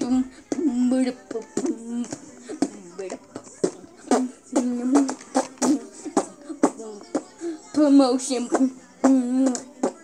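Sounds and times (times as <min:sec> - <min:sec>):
child beatboxing: 0:03.6 - 0:10.0.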